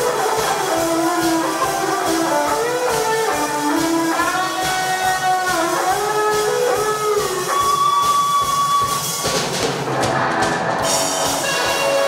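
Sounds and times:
electric guitar lead melody: 0.0 - 9.0, 10.2 - 12.0.

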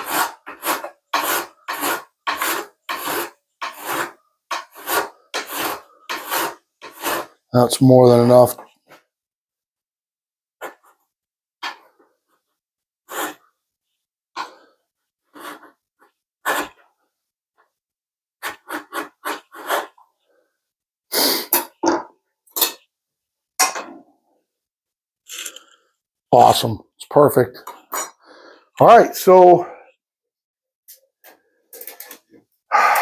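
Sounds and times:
hand file scraping metal: 0.0 - 7.5, 18.4 - 20.0.

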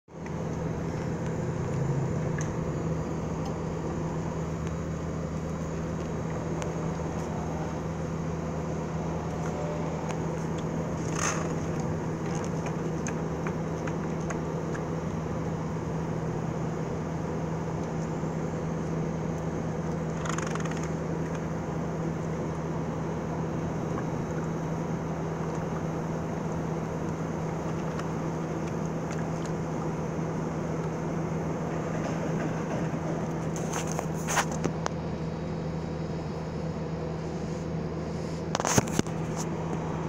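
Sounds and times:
low hum: 0.1 - 40.0.

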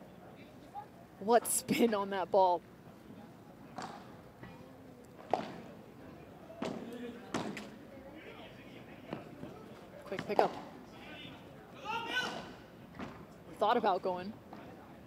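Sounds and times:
paddles striking ball: 6.6 - 7.7.

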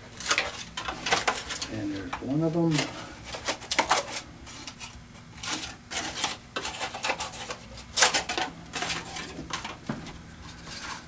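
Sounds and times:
scissors cutting styrofoam: 2.7 - 9.4.

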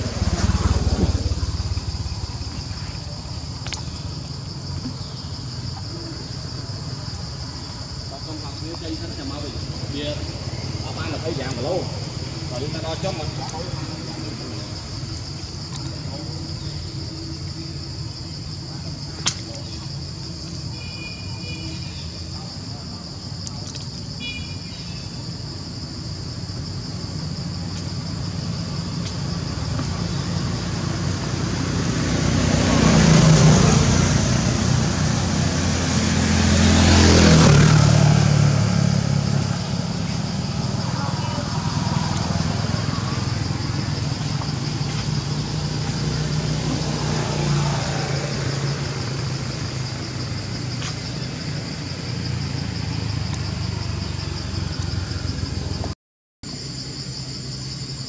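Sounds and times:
motor vehicles passing: 0.0 - 20.7, 26.7 - 55.9
high-pitched insect chorus: 0.0 - 58.0.

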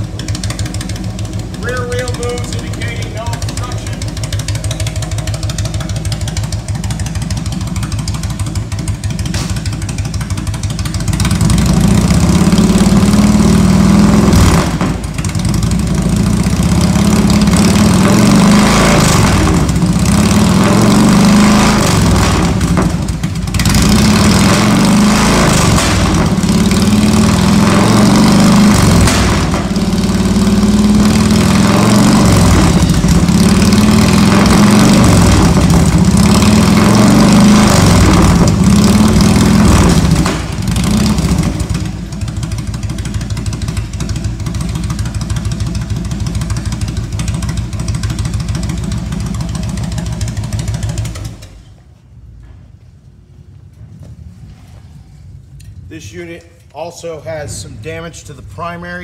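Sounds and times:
motorcycle engine running: 0.0 - 52.2.

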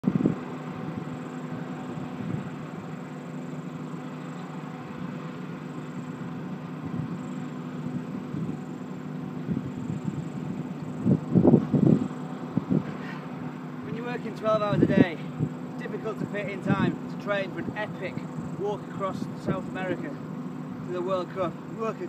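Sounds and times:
engine running: 0.0 - 22.0.

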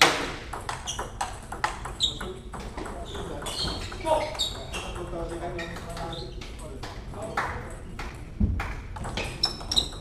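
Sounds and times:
table tennis balls clicking: 0.0 - 10.0.

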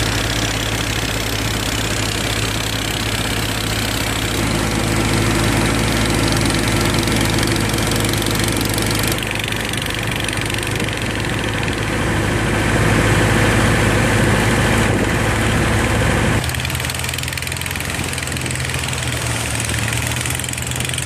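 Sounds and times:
motorboat engine drone: 0.0 - 21.0.

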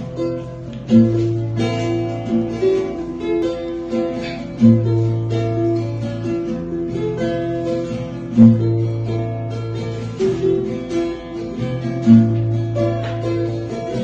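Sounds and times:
acoustic guitar strumming: 0.0 - 14.0
ukulele strumming: 0.0 - 14.0.

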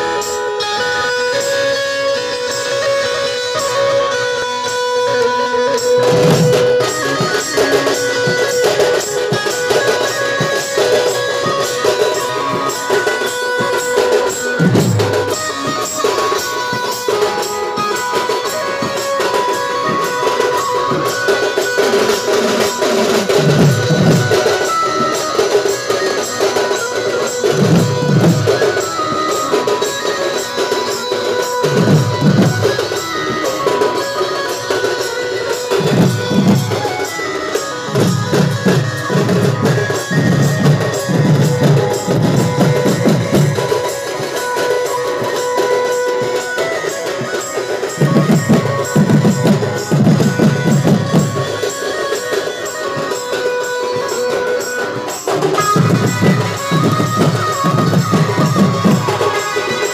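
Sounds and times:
steady held melody line: 0.0 - 59.9.

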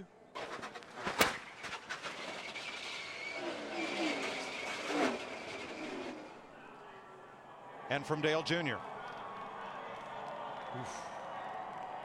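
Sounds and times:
sharp crack: 0.4 - 6.4
race car rushing din: 0.4 - 6.5.

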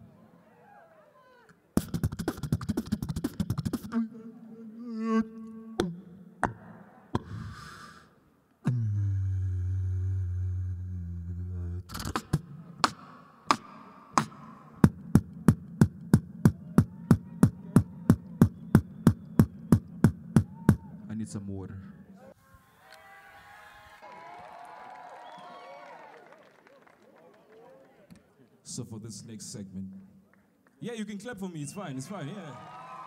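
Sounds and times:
person beatboxing into microphone: 1.8 - 20.9.

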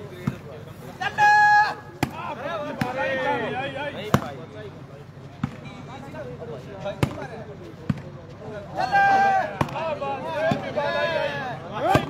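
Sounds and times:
volleyball being struck: 2.0 - 2.2, 9.6 - 9.8.

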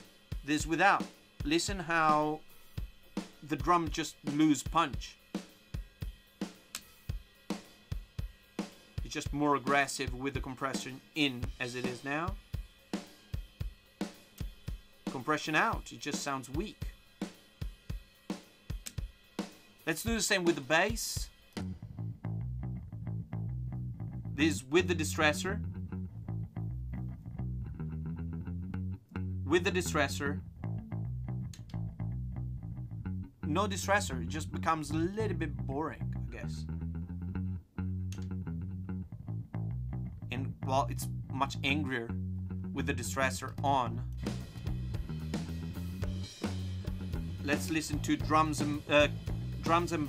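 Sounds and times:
bass line over studio monitors: 0.0 - 5.2, 9.0 - 12.5, 20.0 - 50.0
drum beat: 0.0 - 21.5, 44.2 - 50.0
person speaking: 9.1 - 12.4, 24.4 - 25.6, 29.5 - 30.4, 33.4 - 36.6, 40.3 - 44.1, 47.4 - 50.0.

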